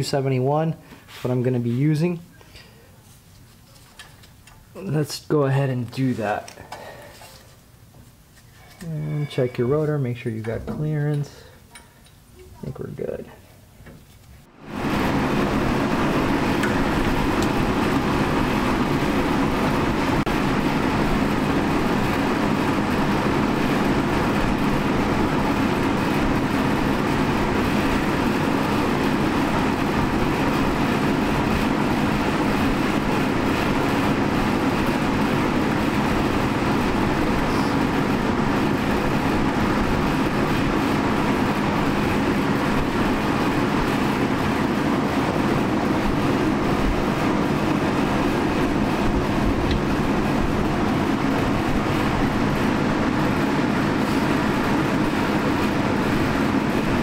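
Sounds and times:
fan running: 0.0 - 57.0.

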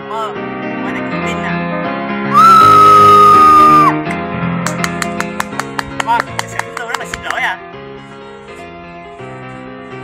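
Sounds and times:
loud high-pitched shriek: 2.3 - 4.0.

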